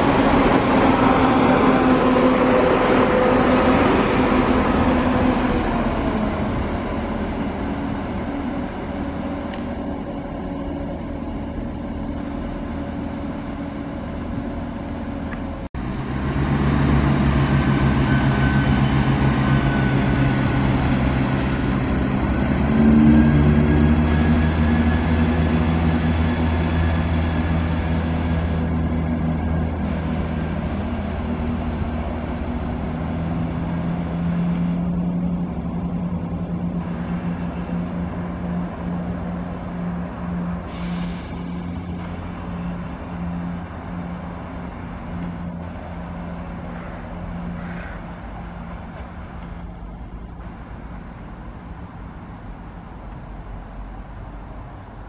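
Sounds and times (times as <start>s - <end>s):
diesel train engines running: 0.0s - 55.0s.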